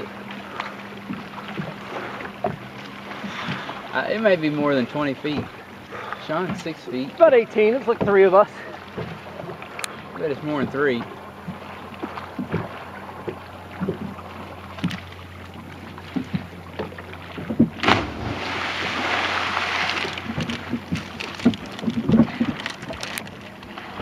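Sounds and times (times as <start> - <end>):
water slapping boat hull: 0.0 - 24.0
person splashing into water: 17.8 - 24.0.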